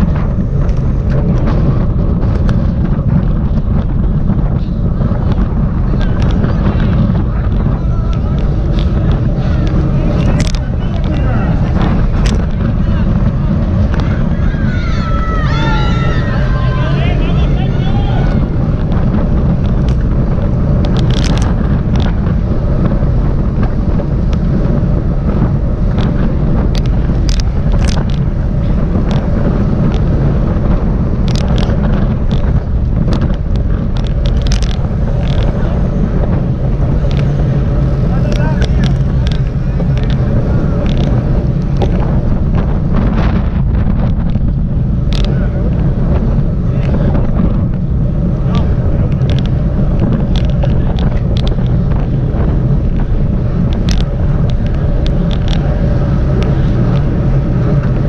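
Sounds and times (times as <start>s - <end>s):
road and tyre rumble: 0.0s - 58.0s
wind buffeting microphone: 0.0s - 58.0s.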